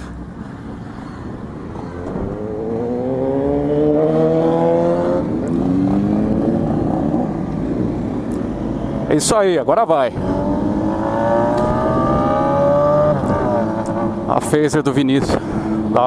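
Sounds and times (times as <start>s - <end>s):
motorcycle engine accelerating: 2.1s - 8.8s, 10.2s - 14.3s.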